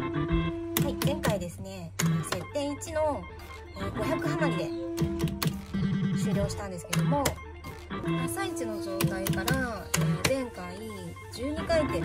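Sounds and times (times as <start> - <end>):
bouncing electronic music: 0.0 - 12.0
slot machine button clicks: 6.9 - 7.4.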